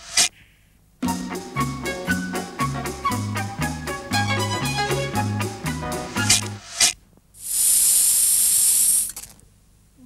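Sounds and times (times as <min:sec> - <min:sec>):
loud high-pitched hiss: 0:06.6 - 0:09.2.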